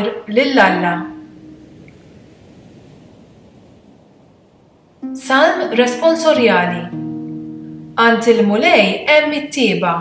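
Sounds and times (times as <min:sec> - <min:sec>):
faint background hiss: 0:00.0 - 0:10.0.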